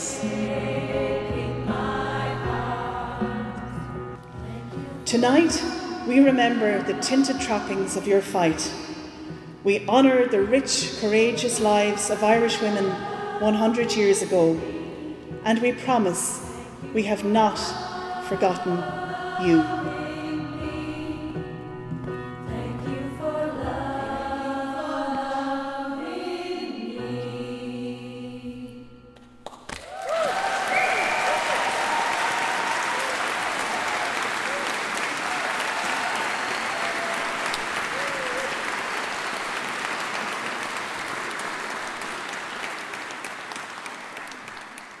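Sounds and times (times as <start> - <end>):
women's choir singing chords: 0.0 - 29.1
audience applause: 29.5 - 45.0
cheers: 29.8 - 44.6.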